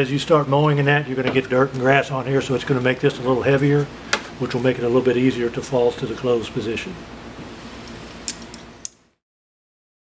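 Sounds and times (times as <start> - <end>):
low room noise: 0.0 - 9.2.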